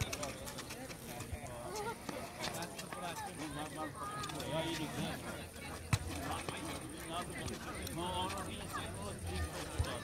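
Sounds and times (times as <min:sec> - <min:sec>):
running feet on asphalt: 0:00.0 - 0:10.0.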